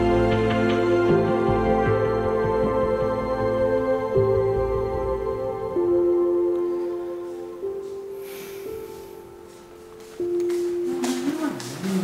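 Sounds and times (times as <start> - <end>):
quiet ambient music: 0.0 - 12.0.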